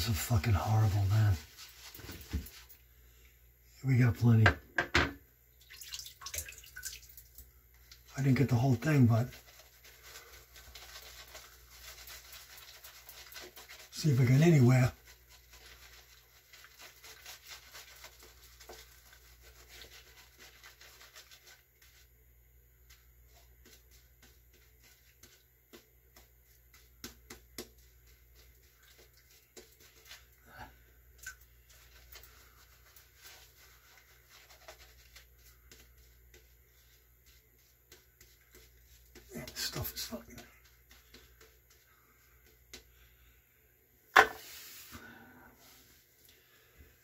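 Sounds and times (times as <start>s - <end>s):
shaving brush scratching on beard: 0.0s - 2.8s, 8.0s - 22.1s, 31.6s - 42.0s.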